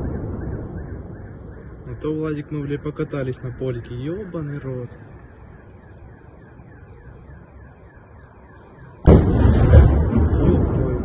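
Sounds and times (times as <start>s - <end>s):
distant explosion blast: 0.0s - 3.6s, 9.0s - 11.0s
heavy rumble: 9.1s - 11.0s.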